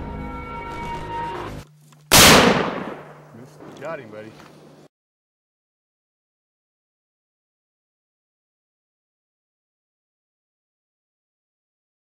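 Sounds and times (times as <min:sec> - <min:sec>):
background music: 0:00.0 - 0:01.7
loud rifle shot: 0:02.1 - 0:03.3.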